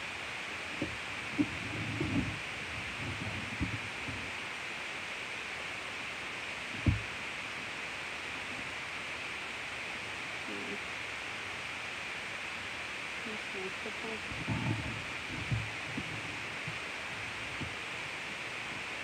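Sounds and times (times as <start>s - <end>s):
background hiss: 0.0s - 19.0s
dull low thump: 0.8s - 4.3s, 6.8s - 7.1s, 14.2s - 17.9s
faint soft knocks: 6.8s - 7.1s, 14.3s - 17.8s.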